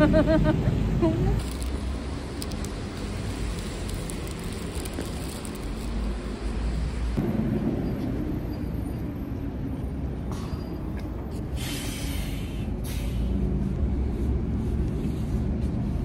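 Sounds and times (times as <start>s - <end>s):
city traffic rumble: 0.0s - 16.0s.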